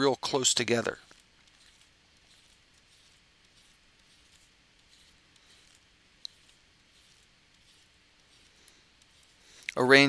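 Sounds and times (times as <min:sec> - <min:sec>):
stylus scratching on drawing tablet: 0:01.5 - 0:09.5.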